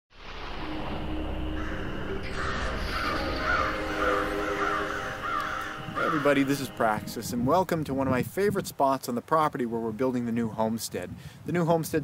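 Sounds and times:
low hum: 0:00.1 - 0:08.4
crows cawing: 0:01.5 - 0:07.0.

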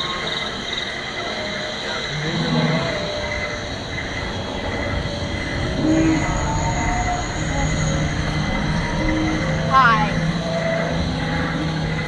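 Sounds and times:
high ringing hum: 0:00.0 - 0:12.0
roller coaster rumbling on track: 0:00.0 - 0:12.0.

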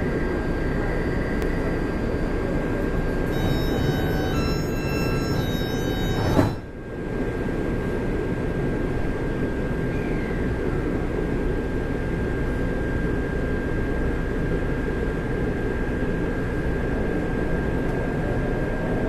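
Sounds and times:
metro car equipment hum: 0:00.0 - 0:09.2
constant high tone: 0:01.6 - 0:06.8
electronic chime: 0:03.3 - 0:06.7
doors shutting knock: 0:03.4 - 0:06.6.

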